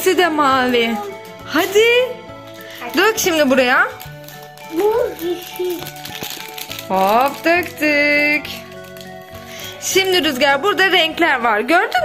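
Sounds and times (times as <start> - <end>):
background music: 0.0 - 12.0
plastic tube rattling: 0.6 - 11.0.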